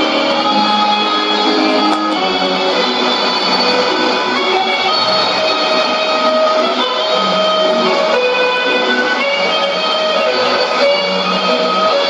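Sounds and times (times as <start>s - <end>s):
radio music with held notes: 0.0s - 12.0s.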